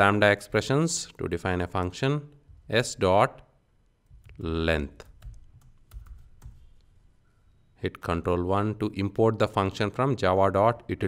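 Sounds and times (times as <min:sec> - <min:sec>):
computer keyboard typing: 0:05.0 - 0:06.7.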